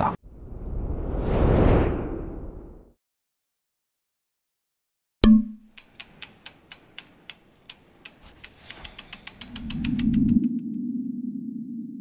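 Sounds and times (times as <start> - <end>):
ratchet-like ticks: 5.6 - 10.6.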